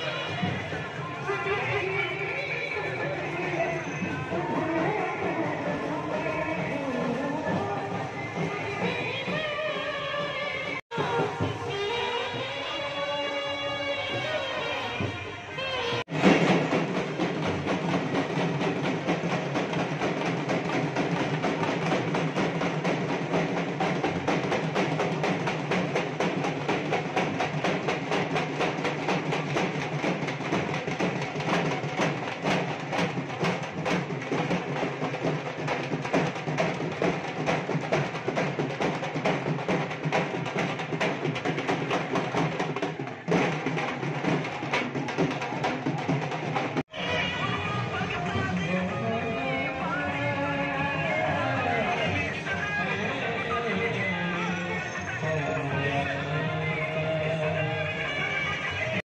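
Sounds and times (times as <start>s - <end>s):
procession drums playing: 0.0s - 59.0s.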